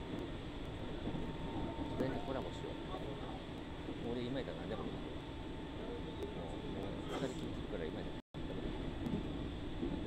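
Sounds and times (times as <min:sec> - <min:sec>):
train rumbling: 0:00.0 - 0:10.0.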